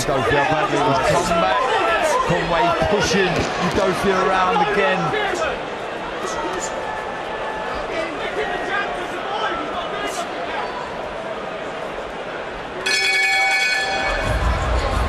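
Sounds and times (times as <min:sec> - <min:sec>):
arena crowd shouting: 0:00.0 - 0:15.0
boxing ring bell: 0:12.8 - 0:14.7.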